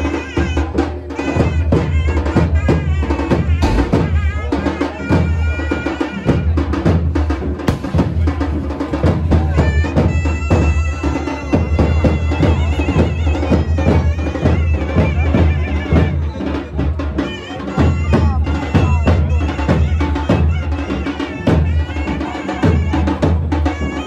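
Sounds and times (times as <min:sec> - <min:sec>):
loud steady drumming: 0:00.0 - 0:24.0.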